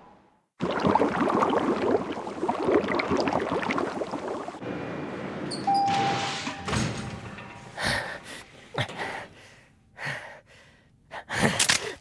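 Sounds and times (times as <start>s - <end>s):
liquid bubbling and gurgling in tank: 0.6s - 4.6s.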